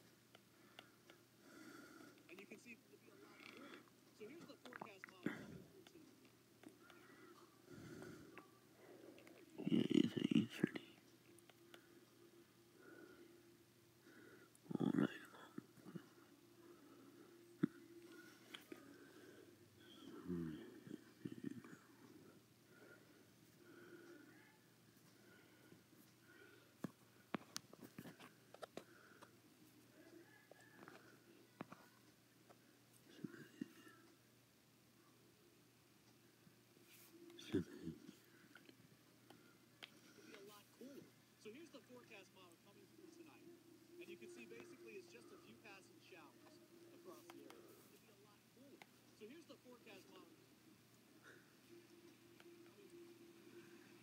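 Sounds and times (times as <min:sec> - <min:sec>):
faint sharp clicks and ticks: 0:00.0 - 0:02.6, 0:03.2 - 0:09.6, 0:10.8 - 0:13.4
quiet indistinct speech: 0:01.5 - 0:13.3, 0:14.0 - 0:34.2, 0:36.8 - 0:54.0.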